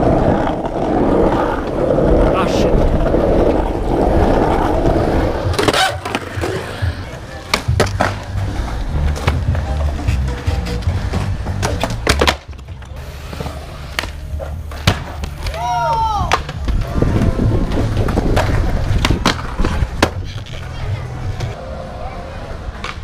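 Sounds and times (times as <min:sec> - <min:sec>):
skateboard wheels rumbling on asphalt: 0:00.0 - 0:23.0
skateboards clattering on concrete: 0:00.0 - 0:23.0.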